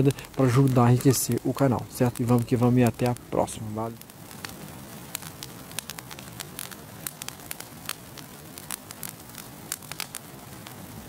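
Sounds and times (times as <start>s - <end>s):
fire crackling: 0.0s - 11.0s
steady hiss: 0.0s - 11.0s.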